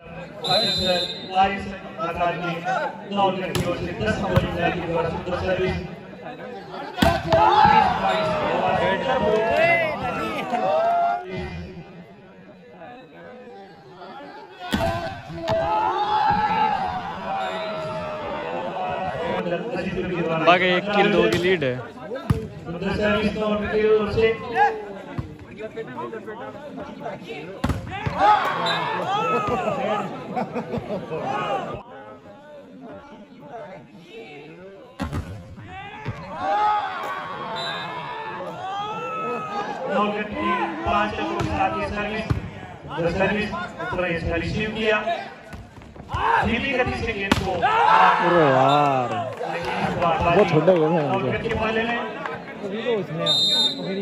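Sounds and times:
many voices: 0.0s - 54.0s
crowd shouting: 6.5s - 11.3s, 13.9s - 19.7s, 27.0s - 31.9s, 35.6s - 44.1s, 46.1s - 51.0s
players shouting: 6.6s - 11.3s, 14.0s - 19.5s, 26.8s - 31.8s, 35.6s - 44.2s, 46.1s - 54.0s
volleyball strikes: 7.0s - 8.4s, 27.6s - 28.3s, 35.0s - 36.3s, 45.5s - 47.7s.

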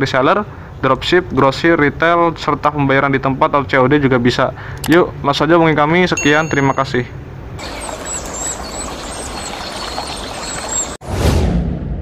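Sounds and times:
short high chirps: 6.2s - 7.0s
rushing splashy noise: 7.6s - 11.4s
swoosh with low boom: 11.0s - 12.0s.

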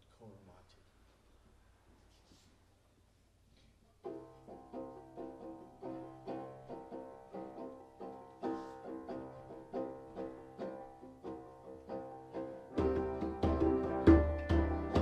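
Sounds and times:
banjo plucked notes: 4.0s - 15.0s.

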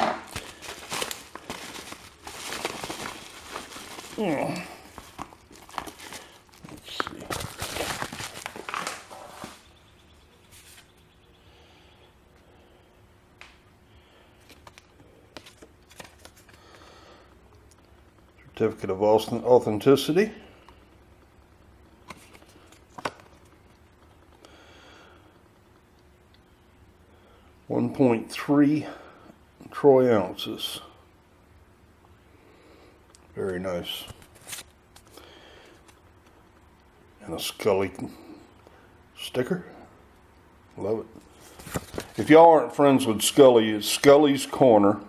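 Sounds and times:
paper mailer rustling: 0.0s - 9.8s, 14.4s - 16.8s, 33.9s - 35.2s, 41.2s - 44.6s.

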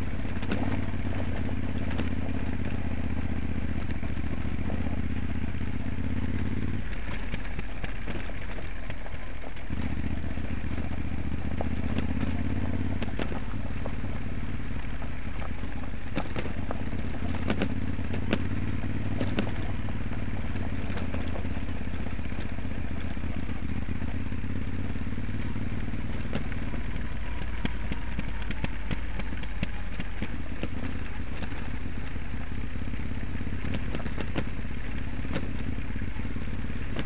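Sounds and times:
gravel clattering under tyres: 0.0s - 37.0s
motorcycle engine running: 0.0s - 37.0s.

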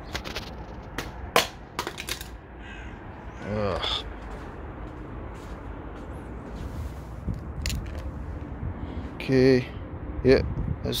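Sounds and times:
phone clattering on concrete: 0.0s - 2.4s.

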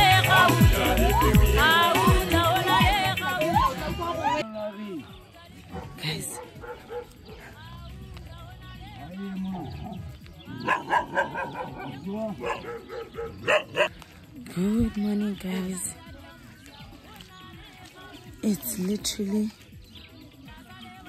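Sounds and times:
faint voices: 0.0s - 21.0s
music: 0.0s - 21.0s
dog barking: 5.7s - 7.7s, 10.5s - 14.0s.

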